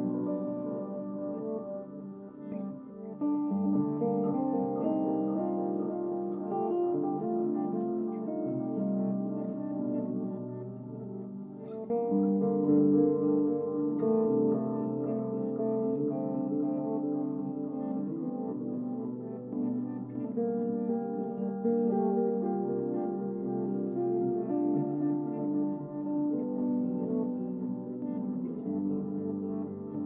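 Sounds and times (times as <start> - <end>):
electric guitar melodic lines: 0.0 - 30.0.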